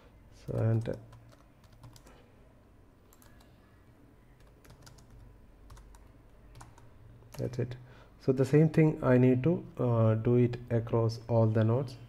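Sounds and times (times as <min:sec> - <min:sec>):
typing on computer keyboard: 0:00.5 - 0:02.1, 0:03.1 - 0:03.5, 0:04.4 - 0:07.6.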